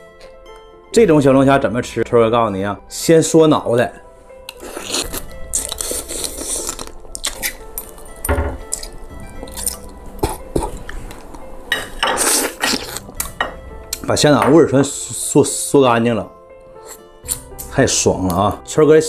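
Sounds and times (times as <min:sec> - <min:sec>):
background music: 0:00.0 - 0:19.0
wet slurping and sucking: 0:04.5 - 0:07.6.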